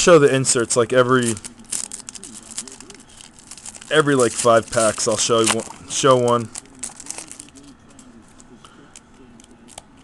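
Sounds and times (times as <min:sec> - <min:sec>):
foil pack crinkling: 0:00.3 - 0:08.2.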